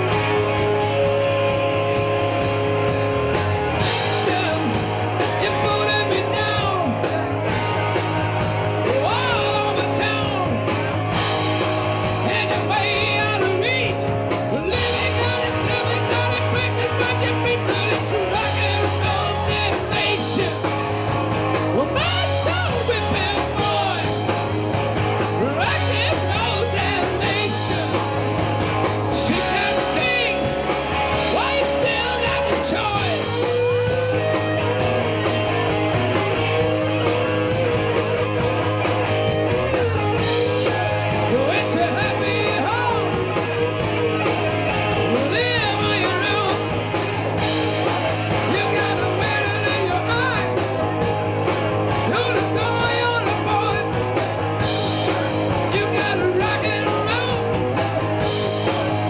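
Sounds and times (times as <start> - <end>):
bass guitar: 0.0 - 59.0
drums: 0.0 - 59.0
electric guitars: 0.0 - 59.0
man singing: 3.8 - 34.8, 39.7 - 46.8, 47.7 - 54.3, 54.9 - 57.8.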